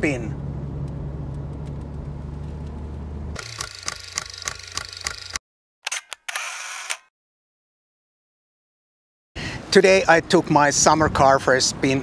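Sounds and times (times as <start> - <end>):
car engine and road noise: 0.0 - 5.4
camera shutter clicks: 3.4 - 7.1.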